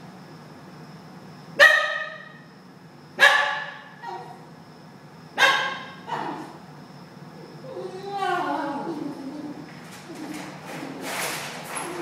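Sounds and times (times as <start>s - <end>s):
dog barking: 1.6s - 2.3s, 3.2s - 4.4s, 5.4s - 6.5s
dog yelping: 3.2s - 4.4s, 5.4s - 6.6s.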